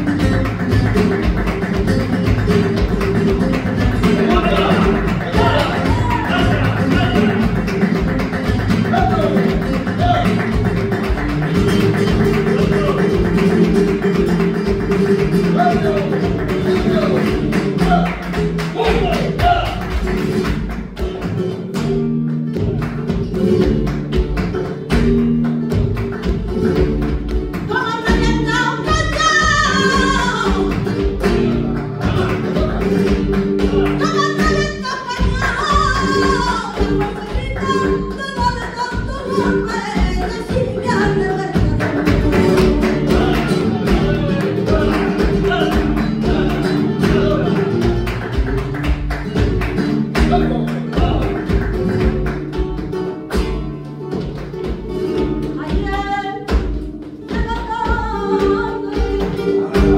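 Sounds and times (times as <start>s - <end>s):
flamenco guitar: 0.0s - 59.9s
rhythmic handclaps: 0.0s - 59.9s
person singing: 31.4s - 48.0s.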